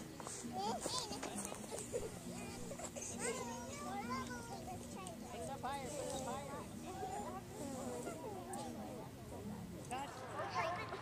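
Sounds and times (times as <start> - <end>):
distant children's voices babbling: 0.3 - 9.7.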